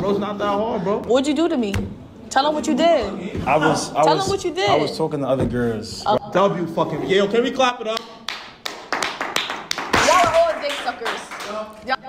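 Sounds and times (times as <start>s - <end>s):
people clapping: 7.9s - 11.9s.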